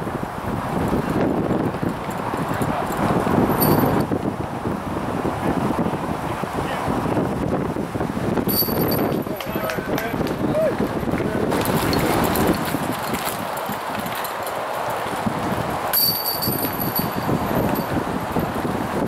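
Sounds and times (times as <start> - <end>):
gusty wind buffeting microphone: 0.0 - 19.0.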